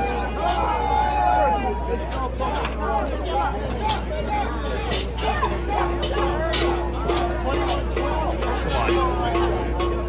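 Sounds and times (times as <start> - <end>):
spectators talking: 0.0 - 10.0.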